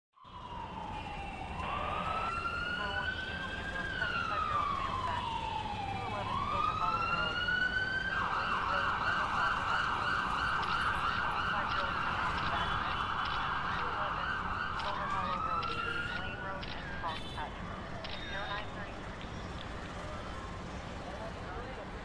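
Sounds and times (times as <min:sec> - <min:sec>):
emergency siren wailing and yelping: 0:00.2 - 0:19.0.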